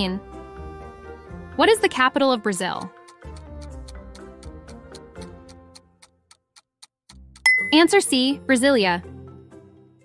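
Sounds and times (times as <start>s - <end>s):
background music: 0.0s - 6.4s, 7.1s - 10.0s
countdown timer ticking: 1.6s - 8.4s.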